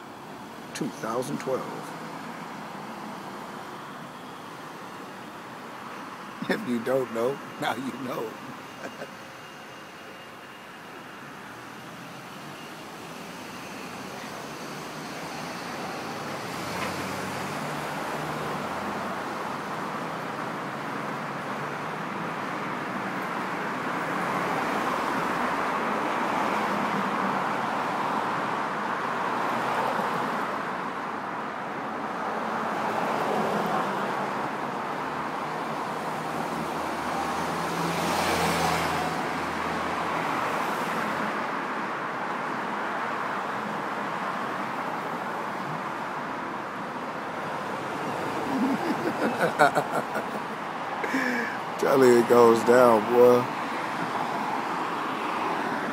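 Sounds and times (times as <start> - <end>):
cars passing by: 0.0 - 55.9.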